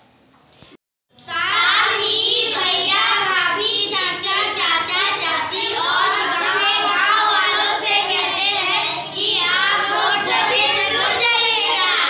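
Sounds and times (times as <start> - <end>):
girls singing in unison: 1.2 - 12.0.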